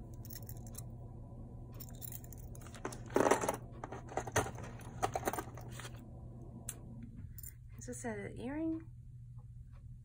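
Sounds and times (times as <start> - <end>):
jewelry clicking and clinking: 0.1 - 0.9, 1.8 - 5.7.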